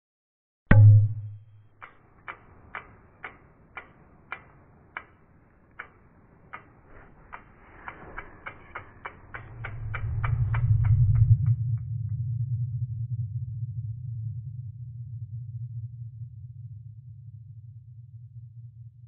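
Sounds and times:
sharp clock-like ticks: 0.7s - 11.6s
low rumble: 8.4s - 17.8s.

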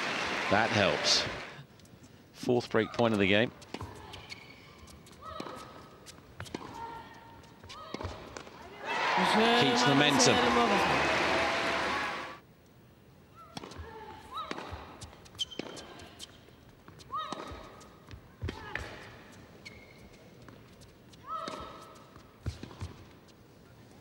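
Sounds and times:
shoe squeaks on court: 3.6s - 5.4s, 15.0s - 16.4s, 19.0s - 21.8s.

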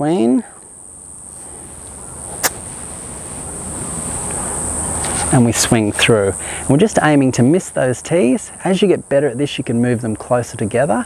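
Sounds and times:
high insect drone: 0.0s - 11.0s
low noise: 0.0s - 11.0s.

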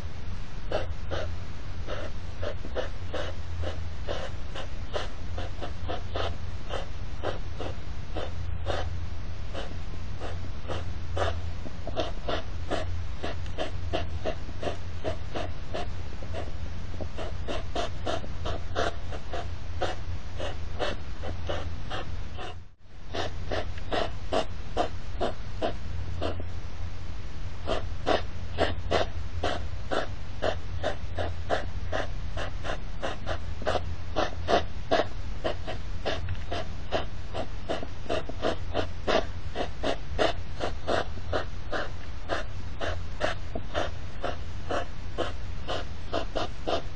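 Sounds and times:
low steady hum: 0.0s - 46.9s
hedgehogs snorting: 0.6s - 26.5s, 27.6s - 46.9s.

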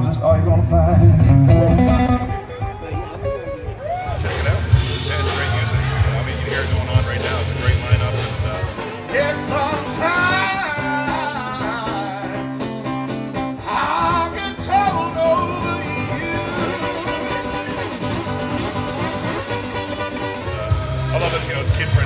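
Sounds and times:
acoustic guitar: 0.0s - 22.0s
man singing: 4.2s - 22.0s.

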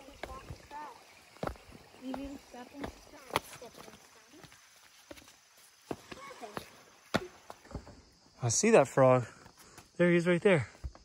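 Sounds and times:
footsteps on stepping stones: 0.0s - 8.0s.

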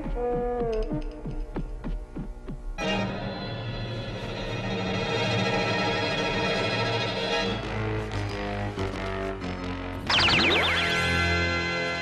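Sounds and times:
cartoon background music: 2.8s - 12.0s
wavering tone falling in pitch: 10.1s - 11.3s.

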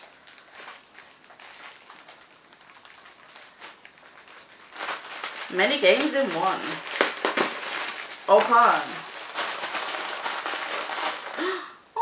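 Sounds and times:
plastic package rustling: 0.0s - 11.6s.

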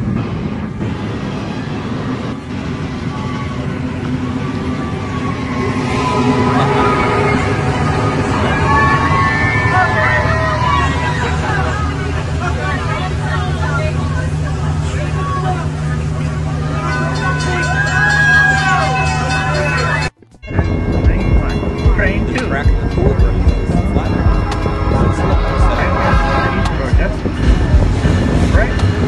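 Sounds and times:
crowd voices: 0.0s - 29.0s
diesel locomotive hum: 0.0s - 29.0s
train running past: 0.0s - 29.0s
music with a beat: 19.8s - 29.0s.

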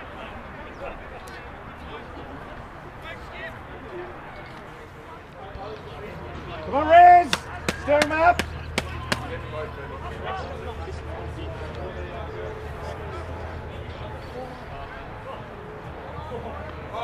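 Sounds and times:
sharp claps: 7.3s - 9.4s.

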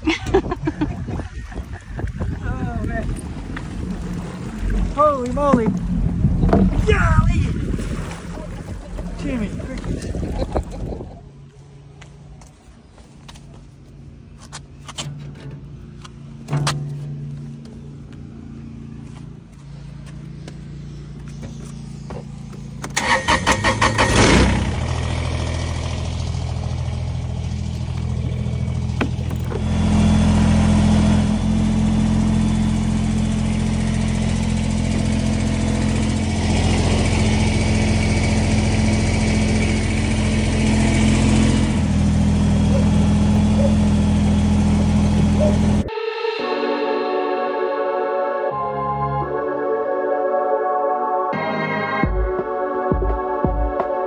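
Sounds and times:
tractor engine running: 0.0s - 45.9s.

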